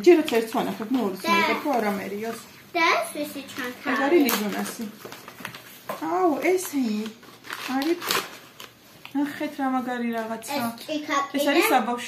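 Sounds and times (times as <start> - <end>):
packaging rustling and crinkling: 0.0 - 9.6.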